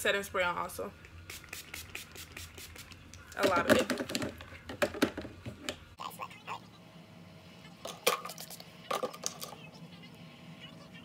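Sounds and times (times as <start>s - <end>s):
low room hum: 0.0s - 11.0s
spray bottle spritzes: 1.3s - 3.0s.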